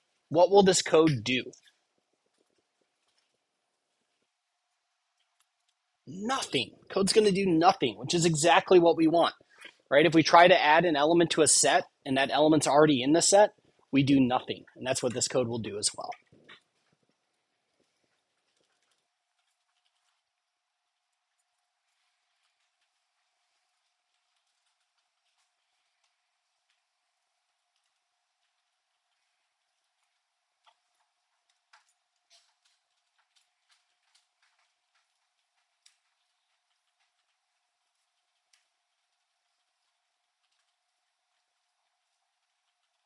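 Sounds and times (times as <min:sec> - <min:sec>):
faint steady hum: 0:00.0 - 0:43.0
man's voice: 0:00.3 - 0:01.5, 0:06.1 - 0:09.3, 0:09.9 - 0:16.2
faint irregular clicks: 0:01.5 - 0:06.0, 0:16.0 - 0:43.0
faint ticks: 0:20.9 - 0:43.0.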